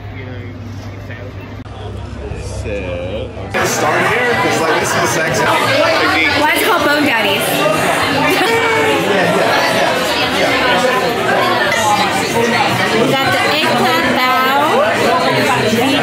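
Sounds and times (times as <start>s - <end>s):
restaurant chatter: 0.0s - 16.0s.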